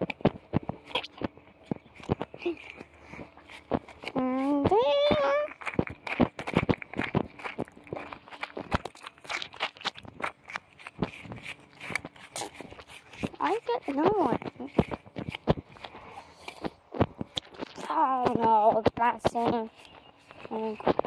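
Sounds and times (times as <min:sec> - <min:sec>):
footsteps through grass: 0:00.0 - 0:21.0.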